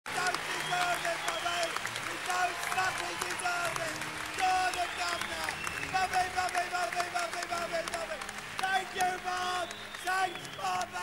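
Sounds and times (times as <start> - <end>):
audience applauding: 0.1 - 11.0.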